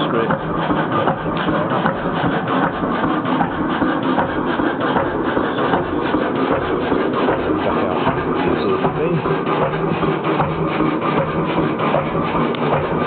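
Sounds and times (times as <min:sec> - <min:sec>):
marine diesel engine running: 0:00.0 - 0:13.0.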